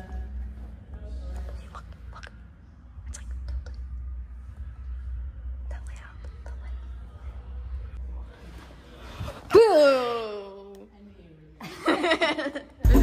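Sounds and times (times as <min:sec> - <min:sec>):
steady low hum: 0:00.0 - 0:13.0
person whispering: 0:01.3 - 0:04.0, 0:05.6 - 0:07.5.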